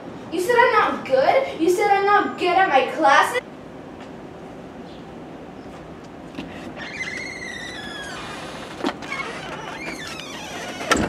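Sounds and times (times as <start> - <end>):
creaky door hinges squealing: 6.7 - 11.0.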